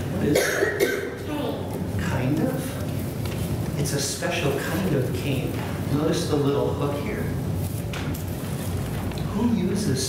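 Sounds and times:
person speaking: 0.0 - 7.6
person coughing: 0.2 - 1.4.

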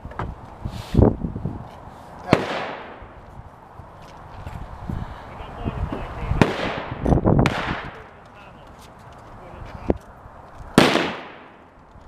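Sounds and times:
gunshot with echo: 2.3 - 3.0, 6.4 - 8.1, 10.8 - 11.6.

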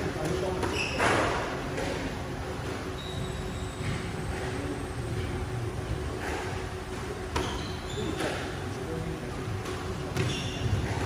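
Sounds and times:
shoes squeaking on wooden floor: 0.6 - 1.4, 7.4 - 8.4, 10.1 - 11.0.

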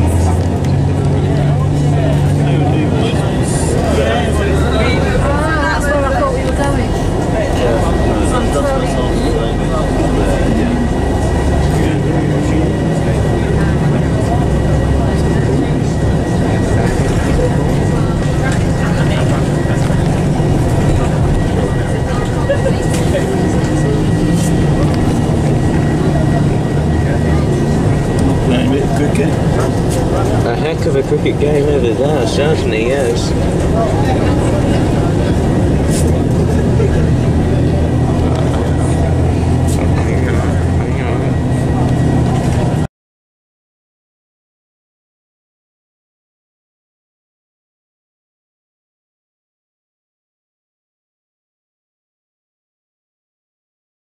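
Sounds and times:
coach engine rumble: 0.0 - 42.9
passenger chatter: 0.0 - 42.9.

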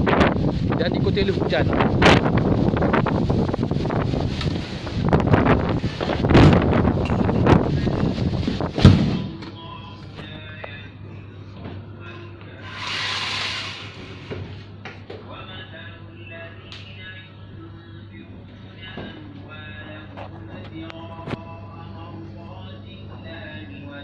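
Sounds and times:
wind buffeting microphone: 0.0 - 8.9
low steady hum: 1.8 - 12.9, 13.6 - 24.0
faint music: 5.4 - 24.0
door shutting with a thud: 8.8 - 9.3
brief hiss: 12.6 - 14.3.

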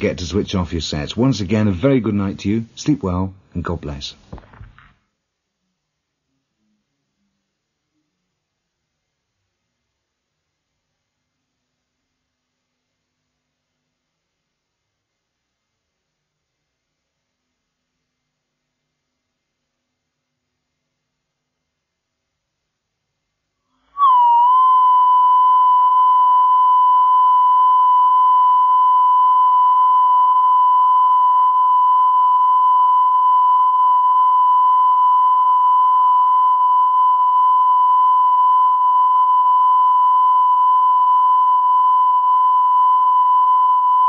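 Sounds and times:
steady test tone: 24.0 - 44.0.

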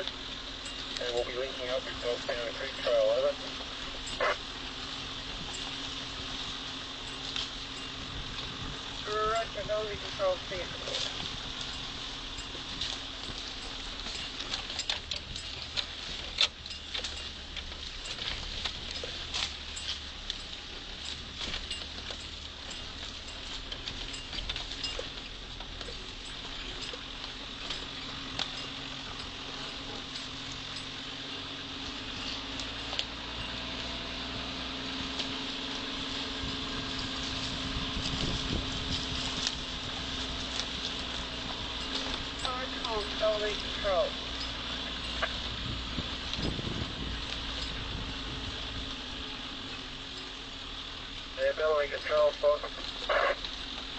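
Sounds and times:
vehicle cab rattling and knocking: 0.0 - 53.0
engine running low: 0.0 - 53.9.

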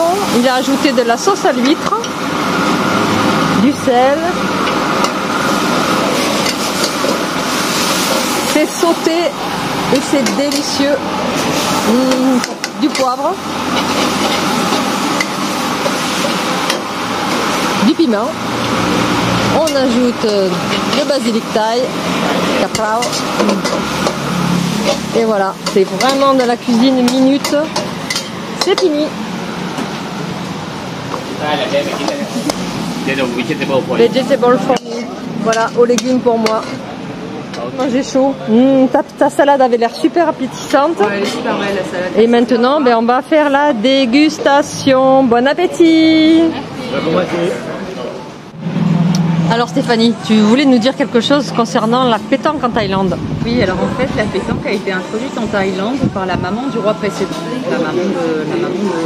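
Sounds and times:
people talking: 0.0 - 2.2, 3.5 - 4.4, 8.4 - 11.1, 11.8 - 13.5, 17.8 - 18.4, 19.4 - 23.8, 24.9 - 27.8, 28.6 - 29.2, 31.4 - 48.3, 49.4 - 59.0
food sizzling in a wok: 0.0 - 37.5
gas flame roaring: 0.0 - 59.0
rushing kitchen noise: 0.0 - 59.0.

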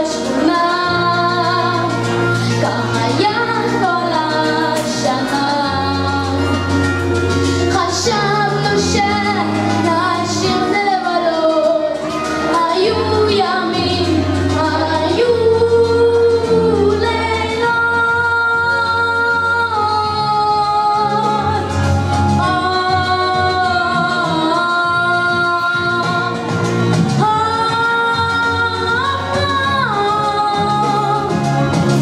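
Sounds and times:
boy singing into microphone: 0.0 - 21.8, 22.4 - 26.6, 27.2 - 32.0
instrumental backing music: 0.0 - 32.0.

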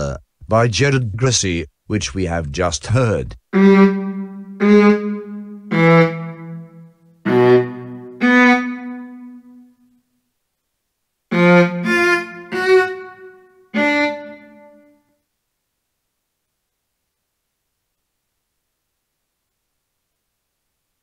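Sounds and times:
sampled viola notes: 3.5 - 9.9, 11.3 - 15.1.

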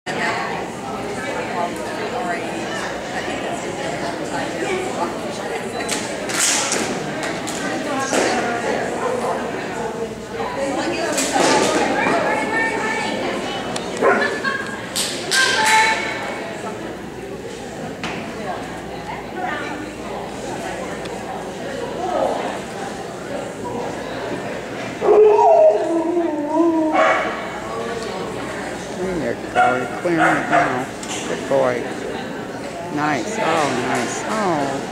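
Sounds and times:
murmur of people talking: 0.1 - 34.9.

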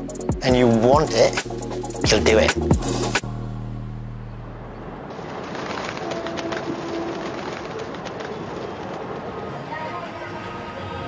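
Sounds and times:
distant urban noise: 0.0 - 11.0
held low music note: 0.6 - 5.1.

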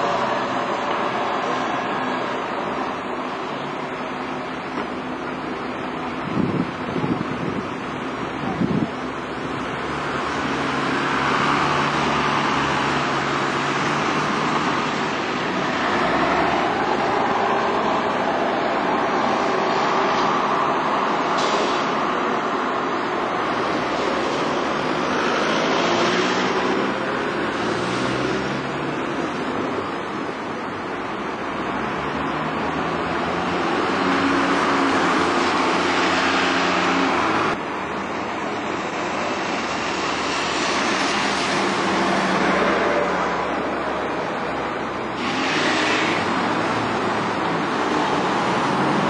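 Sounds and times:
diesel bus engines: 0.0 - 49.0
traffic noise: 0.0 - 49.0.

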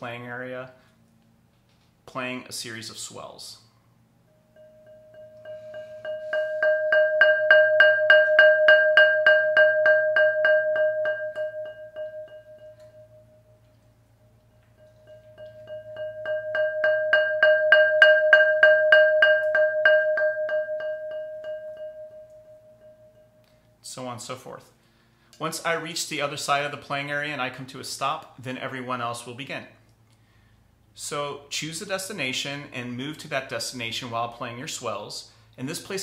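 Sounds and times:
mallet rolling on ceramic pot: 4.5 - 13.6, 14.2 - 23.4.

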